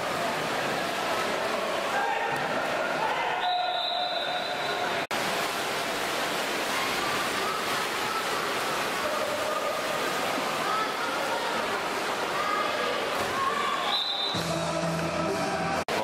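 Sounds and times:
water splashing: 0:00.0 - 0:14.6.

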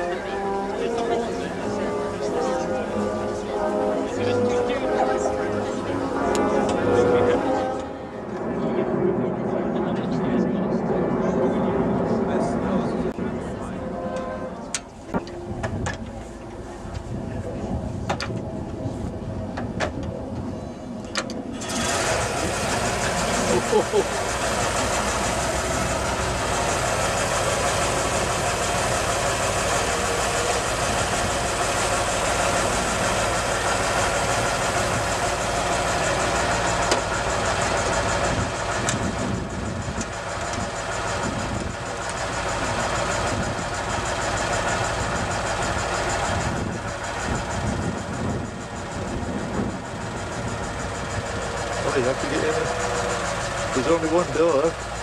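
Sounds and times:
car engine starting and idling: 0:00.0 - 0:07.9, 0:12.4 - 0:55.0.

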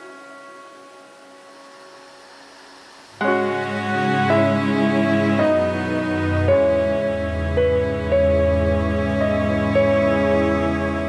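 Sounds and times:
electronic keyboard chord: 0:00.0 - 0:11.0
faint steady hiss: 0:00.0 - 0:11.0.

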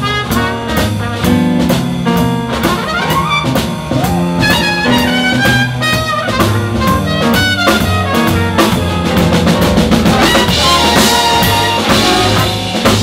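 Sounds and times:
jazz big band playing: 0:00.0 - 0:13.0.

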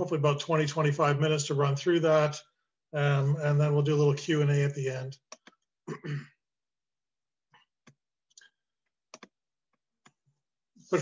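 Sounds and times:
computer mouse clicking: 0:05.3 - 0:05.6, 0:09.1 - 0:09.4.

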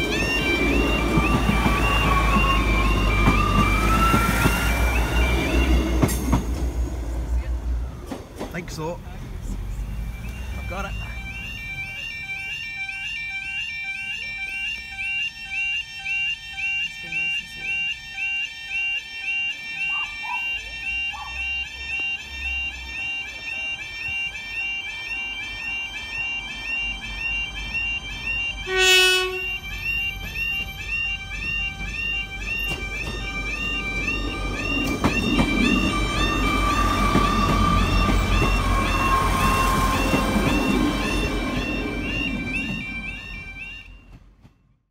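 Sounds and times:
level crossing alarm warbling: 0:00.0 - 0:06.7, 0:09.8 - 0:44.4
diesel train engine and wheels: 0:00.0 - 0:44.9
train horn blast: 0:28.2 - 0:32.0.

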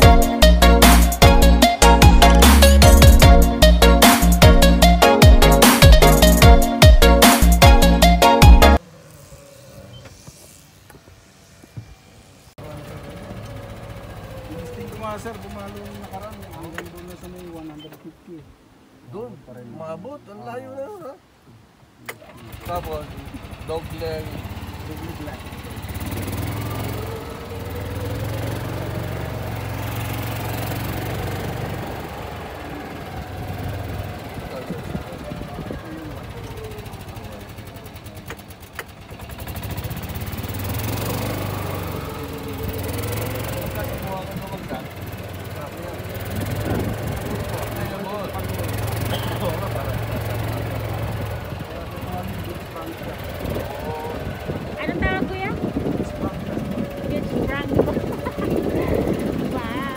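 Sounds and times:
indistinct voices: 0:40.8 - 0:59.9.

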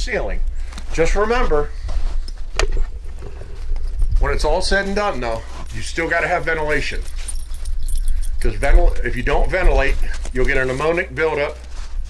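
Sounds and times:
man talking: 0:00.0 - 0:01.7, 0:04.2 - 0:07.1, 0:08.4 - 0:11.7
wind buffeting microphone: 0:01.3 - 0:05.8, 0:06.9 - 0:10.4.

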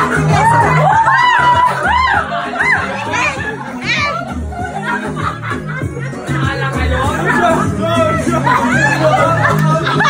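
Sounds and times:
children's voices and shouts: 0:00.0 - 0:05.6, 0:06.2 - 0:10.0
dance music with bass beat: 0:00.0 - 0:10.0.

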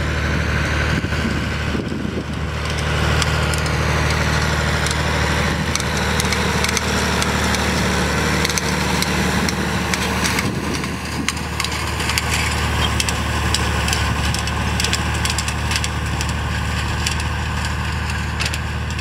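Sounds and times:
hay turner tines rattling: 0:00.0 - 0:19.0
tractor diesel engine running: 0:00.0 - 0:19.0.

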